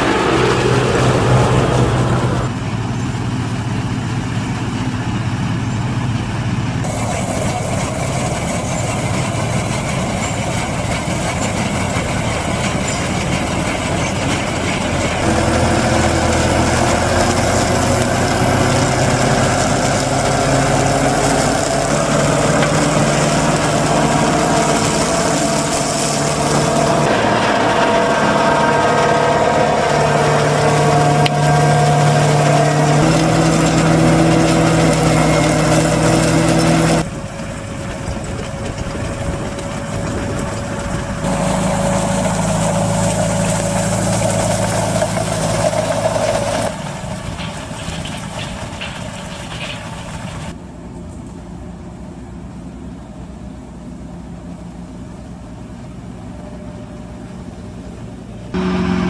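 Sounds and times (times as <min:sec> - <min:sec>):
diesel farm machinery engines: 0:00.0 - 0:59.0.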